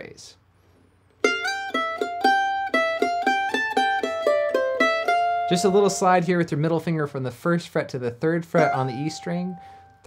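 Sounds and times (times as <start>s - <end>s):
mandolin melody played with pick: 1.2s - 6.4s, 8.6s - 10.0s.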